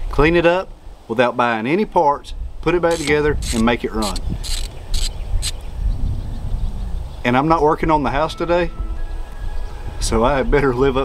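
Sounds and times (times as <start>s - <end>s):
insect chirping: 3.0s - 5.6s.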